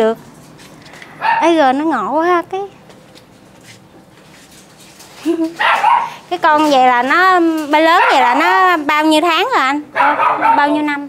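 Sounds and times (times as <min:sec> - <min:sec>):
woman laughing: 0:05.2 - 0:05.6.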